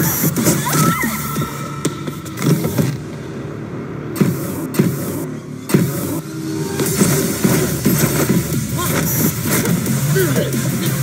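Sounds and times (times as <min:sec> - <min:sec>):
sharp hits: 0:00.0 - 0:11.0
low rumbling soundtrack: 0:00.3 - 0:11.0.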